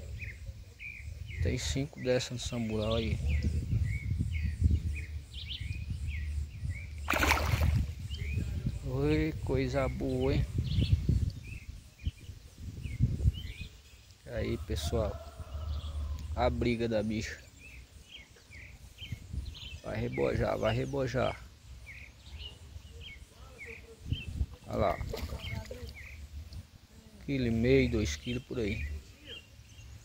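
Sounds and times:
small birds chirping: 0.0 - 30.0
fish splashing in water: 7.0 - 8.1.

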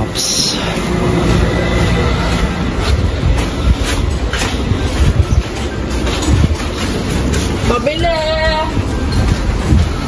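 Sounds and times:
faint footsteps: 0.0 - 10.0
wind buffeting microphone: 0.0 - 10.0.

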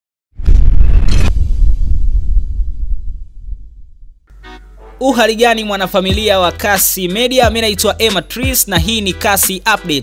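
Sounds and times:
deep low rumble: 0.4 - 4.3.

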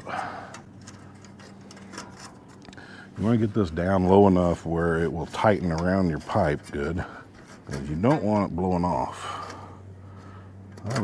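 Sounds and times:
metal scraping rustle: 0.3 - 11.0.

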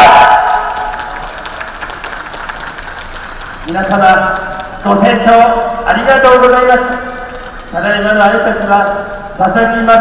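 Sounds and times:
amplified voice over loudspeaker: 0.0 - 0.7, 3.7 - 10.0
crowd applause: 0.0 - 5.2.

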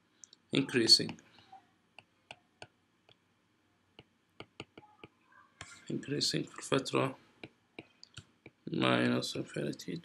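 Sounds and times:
stylus tapping on glass screen: 4.0 - 5.8.

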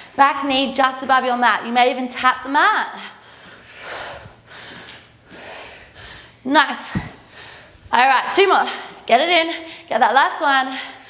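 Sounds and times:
woman breathing hard: 3.0 - 7.9.

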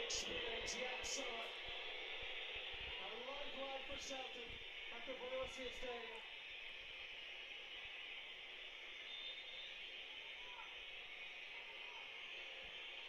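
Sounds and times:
stadium crowd through tv speaker: 0.0 - 13.0.

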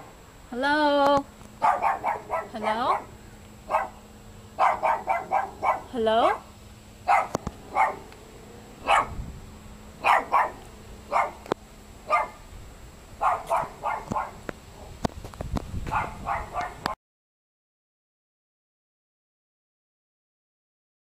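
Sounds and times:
dog barking: 1.6 - 3.1, 3.7 - 4.0, 4.6 - 6.4, 7.1 - 8.1, 8.8 - 9.2, 10.0 - 11.4, 12.1 - 12.4, 13.2 - 15.0, 15.9 - 17.0.

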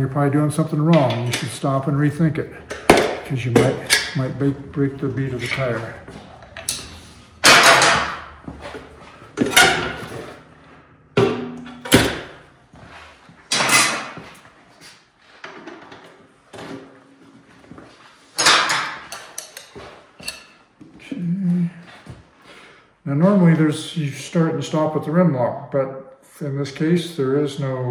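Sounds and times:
tyre irons scraping and clanking: 2.6 - 14.4.

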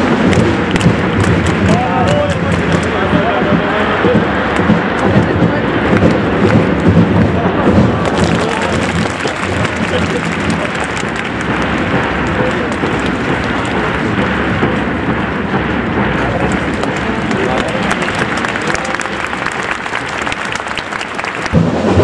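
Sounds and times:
crowd clapping: 0.0 - 22.0
crowd voices: 0.0 - 22.0
heavy low drum thumps: 0.0 - 22.0.

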